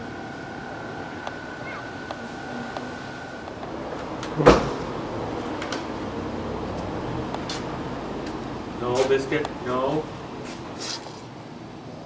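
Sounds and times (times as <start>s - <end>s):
faint high whine: 0.0s - 10.4s.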